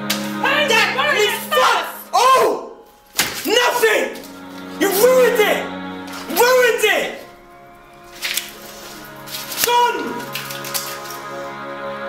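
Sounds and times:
hand slapping face: 0.0s - 0.4s, 3.1s - 3.6s
music with singing voice: 0.0s - 12.0s.

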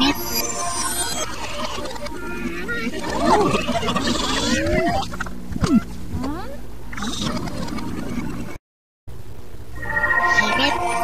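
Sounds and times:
steady low hum: 2.0s - 11.0s
animal-like calls: 2.9s - 5.9s.

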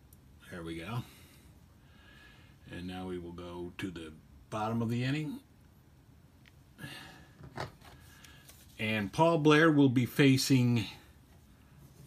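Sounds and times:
soft rustle: 7.8s - 9.4s, 11.1s - 12.0s.

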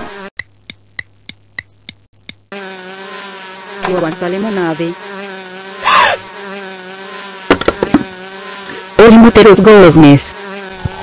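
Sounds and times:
bee swarm buzzing: 0.0s - 0.3s, 1.8s - 11.0s
sharp knocks: 7.5s - 8.1s.

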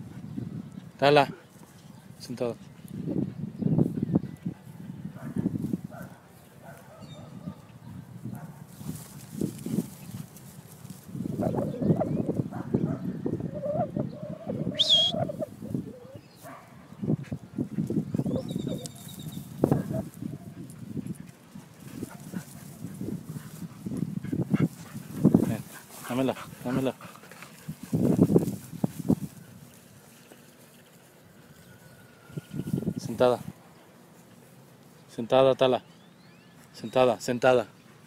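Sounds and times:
brief pitched call: 14.7s - 15.4s.

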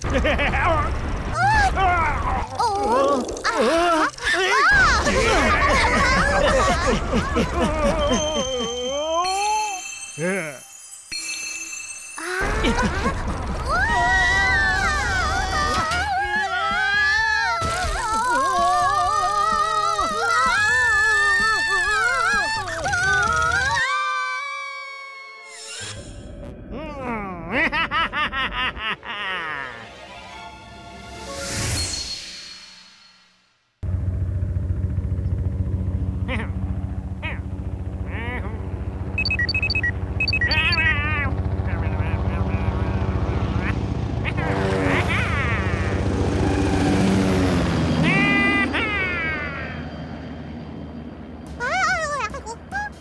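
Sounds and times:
cartoon propeller plane droning: 0.0s - 9.6s, 12.2s - 26.6s, 33.8s - 53.0s
short beeps: 39.2s - 40.9s
cartoon wobbling whir: 39.2s - 49.8s.

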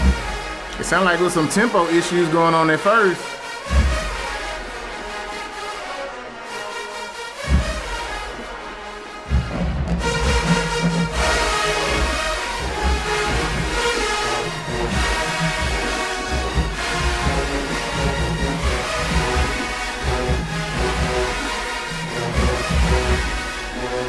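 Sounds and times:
marching band playing: 0.0s - 24.0s.

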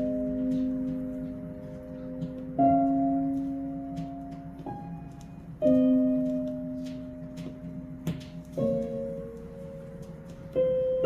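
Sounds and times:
soft instrumental chord: 0.0s - 11.0s.

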